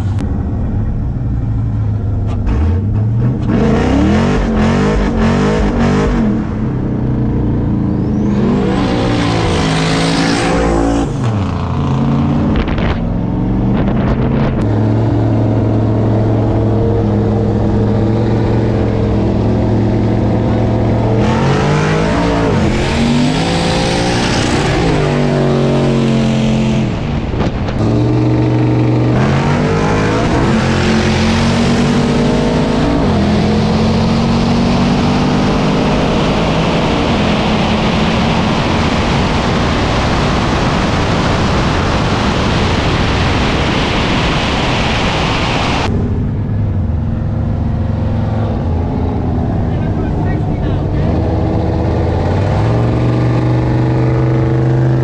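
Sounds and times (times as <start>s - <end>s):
car engine accelerating with gear shifts: 0.0s - 55.0s.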